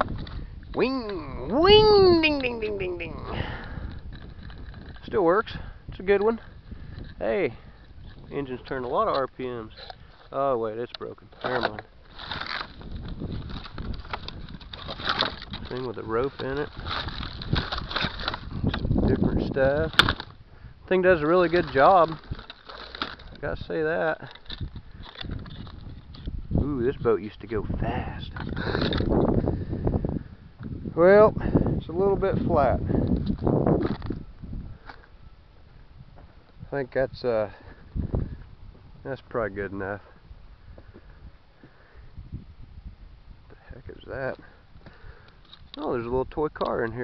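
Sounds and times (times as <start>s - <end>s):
rummaging through broken fiberglass: 3.8s - 5.2s, 11.2s - 20.4s, 21.1s - 26.4s, 32.9s - 34.2s.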